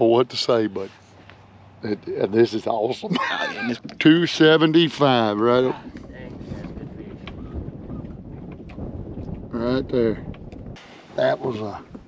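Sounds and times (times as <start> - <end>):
wind buffeting microphone: 3.6 - 12.0.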